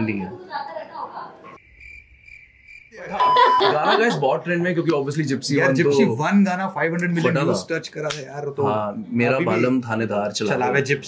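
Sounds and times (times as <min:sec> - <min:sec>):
cricket chirping: 0:01.6 - 0:04.1.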